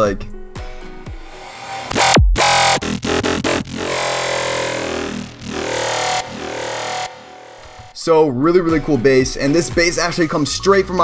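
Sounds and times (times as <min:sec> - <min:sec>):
growling synthesizer bass: 0:01.2 - 0:08.0
loud bass hit: 0:01.2 - 0:08.0.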